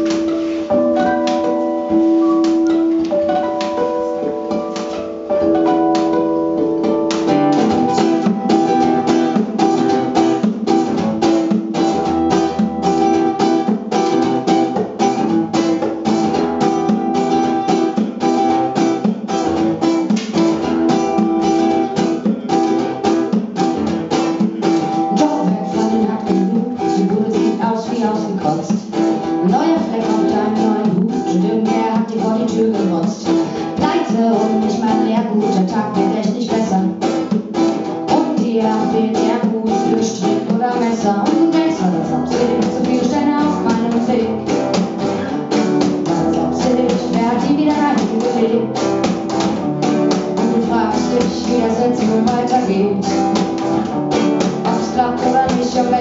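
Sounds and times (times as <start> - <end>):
acoustic guitars strummed: 0.0 - 56.0
cajon beat: 0.0 - 56.0.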